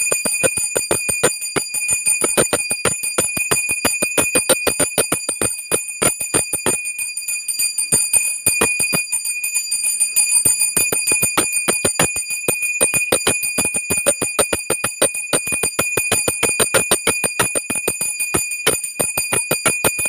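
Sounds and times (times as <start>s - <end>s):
brass hand bell ringing rapidly: 0.0s - 20.0s.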